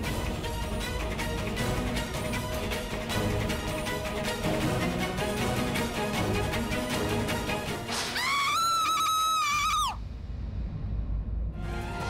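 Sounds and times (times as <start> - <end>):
low rumble: 10.0 - 12.0.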